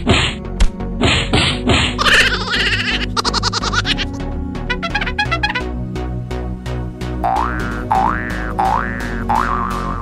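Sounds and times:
background music with steady beat: 0.0 - 10.0
cartoon boing sound effects: 7.2 - 10.0.

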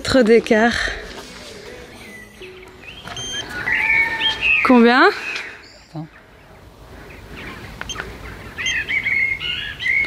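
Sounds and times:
small birds chirping: 1.9 - 10.0.

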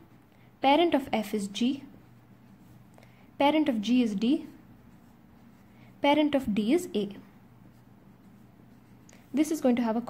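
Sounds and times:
marker pen writing on paper: 3.5 - 10.0.

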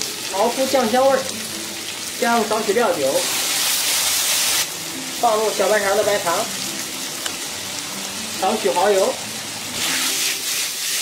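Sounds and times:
meat sizzling in a wok: 0.0 - 11.0.

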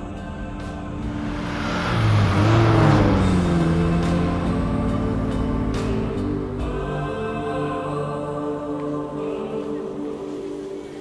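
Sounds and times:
tense dramatic music: 0.4 - 7.3
car rushing on road: 0.5 - 6.7.

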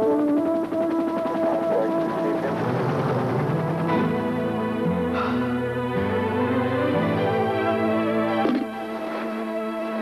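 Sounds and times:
music with sustained chords: 0.0 - 10.0.

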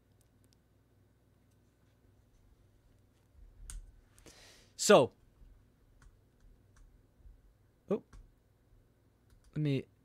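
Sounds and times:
short breath: 4.2 - 4.8
computer mouse clicks: 9.2 - 9.6.

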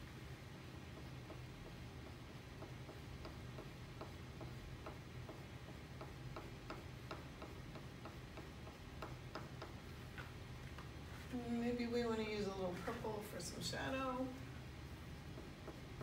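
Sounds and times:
low steady hum: 0.0 - 16.0
crayon ticking and scratching on paper: 0.9 - 10.9.

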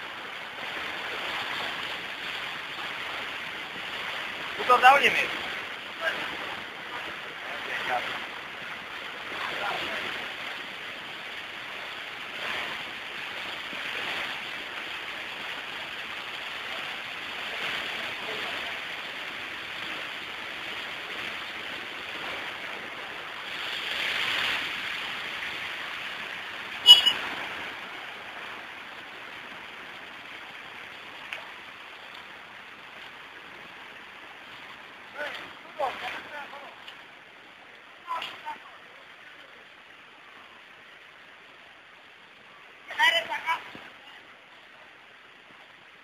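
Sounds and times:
floodwater rushing across road: 0.0 - 46.0.

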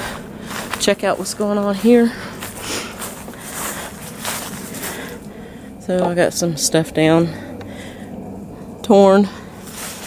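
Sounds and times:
footsteps through grass: 0.0 - 5.5, 9.6 - 10.0.

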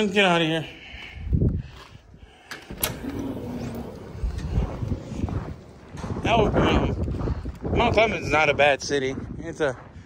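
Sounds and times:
footsteps: 0.9 - 10.0
automatic door opening: 2.4 - 5.7
low rumble: 2.7 - 8.0.

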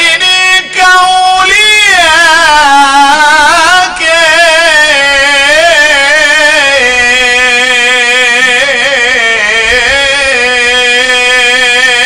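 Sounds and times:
man singing solo: 0.0 - 12.0.

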